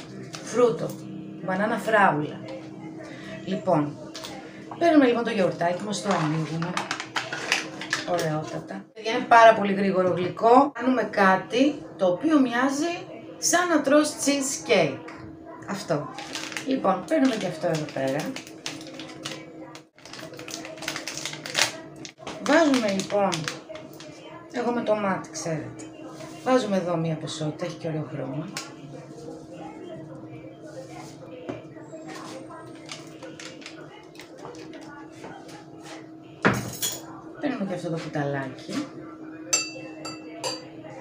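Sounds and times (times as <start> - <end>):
plastic packet crinkling: 5.7 - 8.3, 16.0 - 24.2, 32.2 - 34.9.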